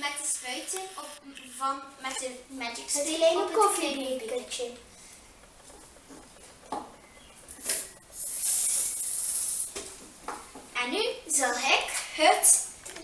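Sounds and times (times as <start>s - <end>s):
spray hissing: 8.1s - 9.9s
short puff: 8.2s - 9.7s.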